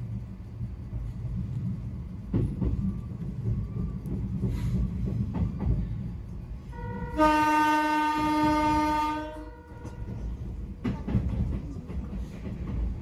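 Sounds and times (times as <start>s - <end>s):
train running gear rumble: 0.0s - 13.0s
train wheel clacks: 1.4s - 6.3s, 9.7s - 13.0s.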